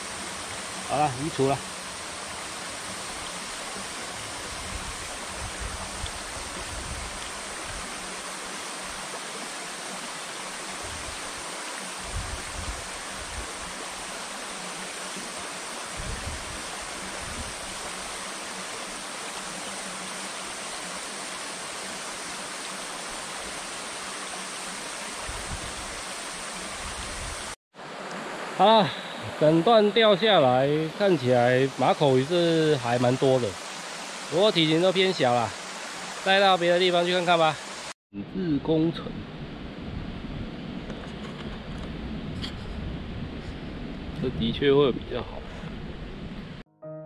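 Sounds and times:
river water rushing over stones: 0.0s - 37.9s.

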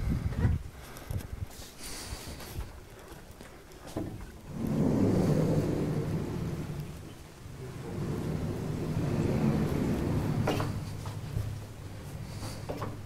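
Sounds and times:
sliding panels rumbling in tracks: 4.0s - 13.0s.

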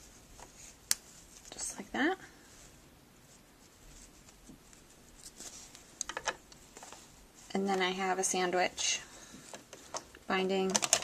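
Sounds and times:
fabric rustling: 0.0s - 10.7s.

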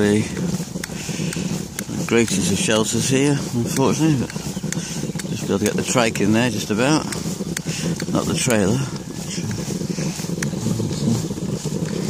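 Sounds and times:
tricycle rolling on wet road: 0.0s - 12.0s.

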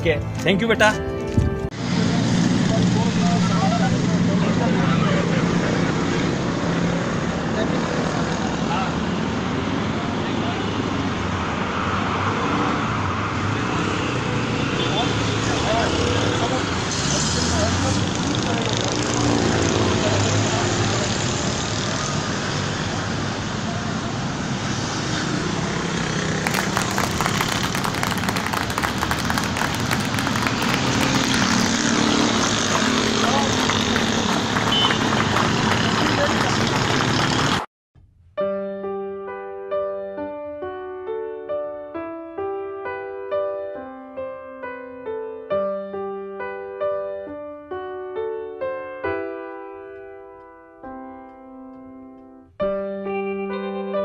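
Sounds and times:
road traffic: 0.0s - 37.7s.

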